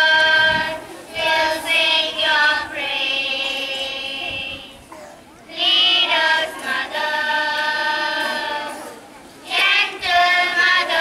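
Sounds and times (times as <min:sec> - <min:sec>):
children singing together: 0:00.0 - 0:04.8, 0:05.5 - 0:11.0.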